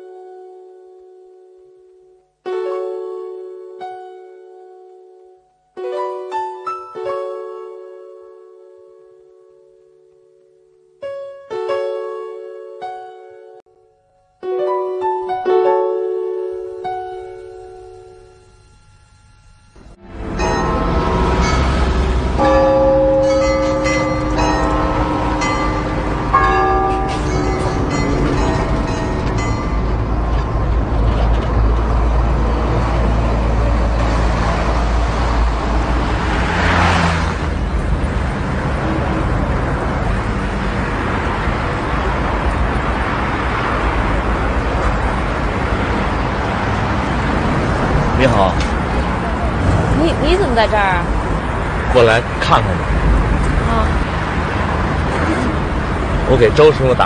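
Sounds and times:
instrumental music: 0:00.0 - 0:36.0
street traffic rumble: 0:19.8 - 0:57.0
vehicle passing by: 0:20.0 - 0:57.0.

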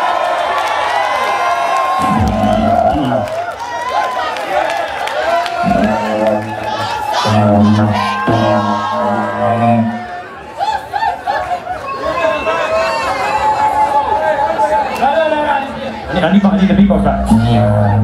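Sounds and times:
crowd shouting: 0:00.0 - 0:16.1
deep bass notes: 0:02.0 - 0:03.3, 0:05.6 - 0:06.7
voice on microphone: 0:02.0 - 0:03.3, 0:05.6 - 0:10.1, 0:16.1 - 0:18.0.

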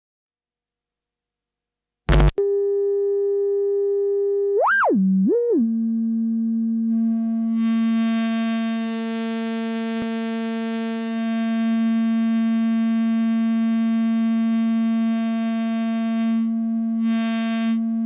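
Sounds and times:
synthesizer drone: 0:04.6 - 0:09.2, 0:11.0 - 0:18.0.

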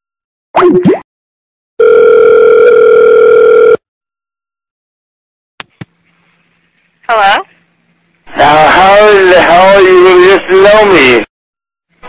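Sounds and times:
telephone dial tone: 0:01.8 - 0:03.8.

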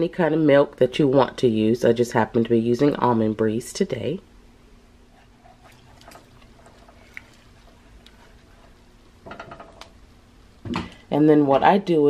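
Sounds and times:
pot clicking and clattering: 0:09.2 - 0:10.0.

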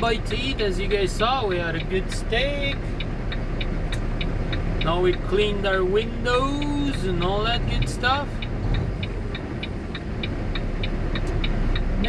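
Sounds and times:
indicator ticking: 0:00.0 - 0:12.0
truck engine and road rumble: 0:00.0 - 0:12.0.

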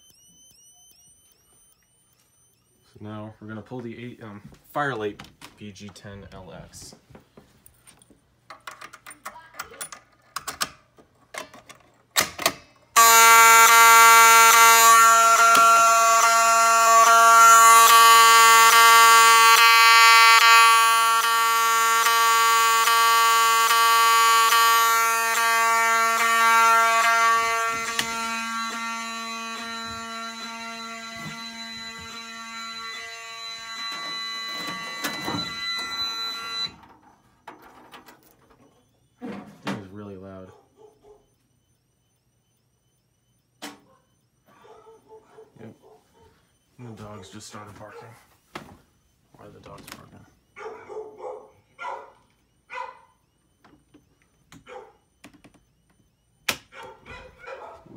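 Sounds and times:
fire alarm horn buzzing: 0:00.0 - 0:05.1, 0:12.2 - 0:57.9.

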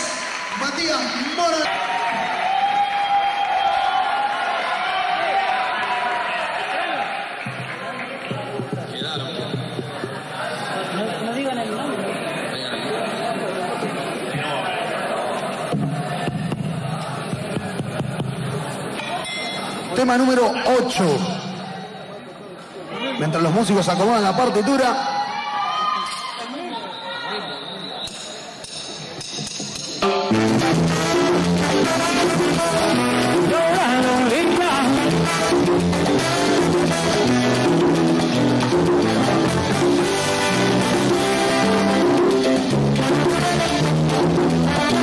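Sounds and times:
crowd noise: 0:00.0 - 0:45.0
murmur of voices: 0:06.1 - 0:30.4
live band playing: 0:28.1 - 0:45.0.

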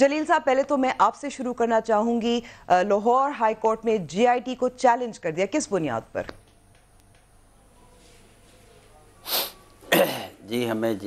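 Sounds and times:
faint line hiss: 0:07.8 - 0:09.9.

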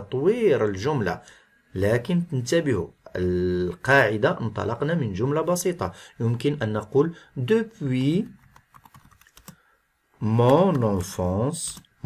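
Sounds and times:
computer keyboard typing: 0:08.2 - 0:09.6, 0:10.3 - 0:12.0.

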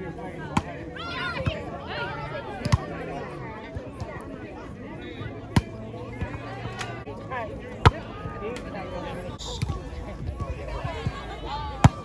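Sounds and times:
chatter and calls of people: 0:00.0 - 0:12.0.

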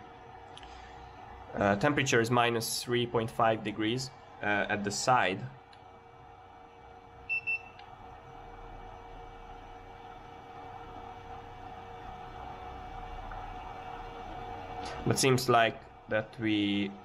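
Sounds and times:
steady machine hum: 0:00.0 - 0:17.0
infrared thermometer beeping: 0:07.2 - 0:07.9.

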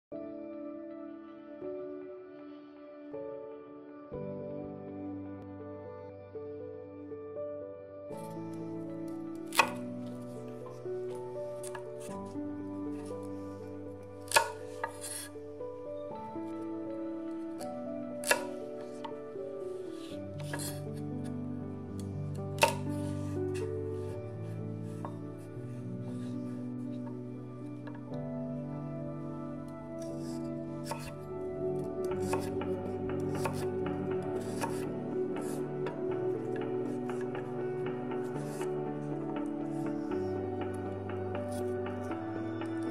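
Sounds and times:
background music held notes: 0:00.1 - 0:42.9
knife chopping on cutting board: 0:09.4 - 0:09.8, 0:14.3 - 0:15.3, 0:18.2 - 0:18.6, 0:22.6 - 0:23.1, 0:30.2 - 0:31.2, 0:32.1 - 0:32.5, 0:33.4 - 0:33.7, 0:34.4 - 0:34.8
knife slicing on cutting board: 0:09.5 - 0:09.8, 0:14.2 - 0:15.3, 0:18.2 - 0:18.6.

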